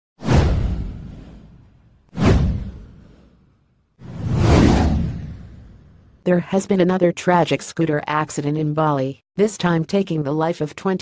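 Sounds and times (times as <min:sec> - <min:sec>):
deep whoosh: 0:00.2 - 0:06.2.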